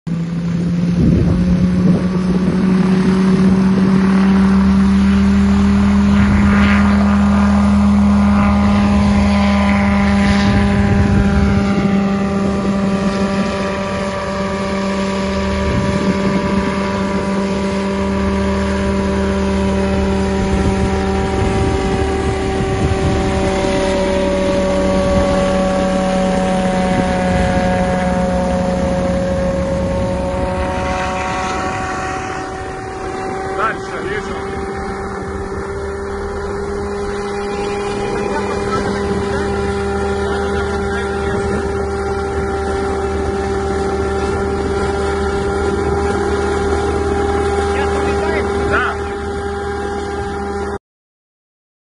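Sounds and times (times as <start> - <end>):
drone rotors humming: 0.1 - 50.8.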